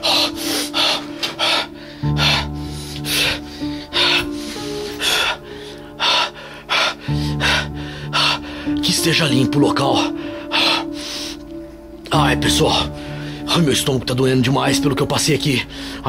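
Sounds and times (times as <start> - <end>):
man breathing hard in gasps: 0.0 - 8.8, 10.1 - 11.5
background music with low drone: 0.0 - 16.0.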